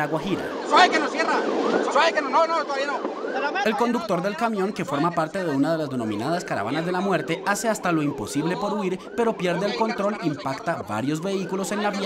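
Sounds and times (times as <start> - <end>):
people talking loudly: 0.0 - 7.5.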